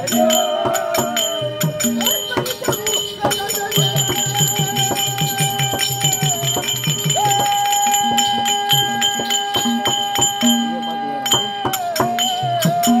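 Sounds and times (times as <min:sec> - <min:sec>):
drum beating: 0:00.0 - 0:13.0
small bells and cymbals jingling: 0:00.0 - 0:13.0.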